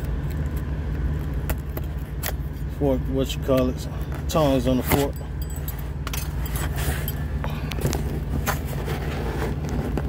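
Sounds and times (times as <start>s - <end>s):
low vehicle cabin hum: 0.0s - 10.0s.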